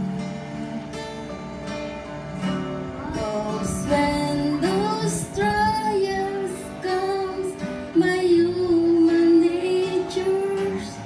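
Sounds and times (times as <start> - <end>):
women singing together: 3.6 - 11.0.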